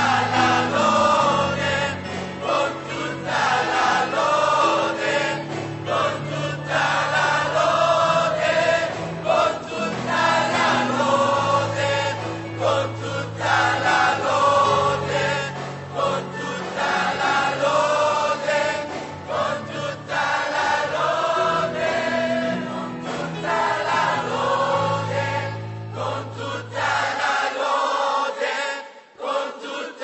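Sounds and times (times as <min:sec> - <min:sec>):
choir singing gospel song: 0:00.0 - 0:30.0.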